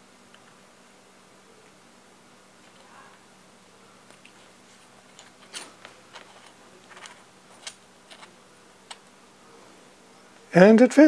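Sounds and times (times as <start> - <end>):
metal pieces clicking and scraping: 5.1 - 9.0.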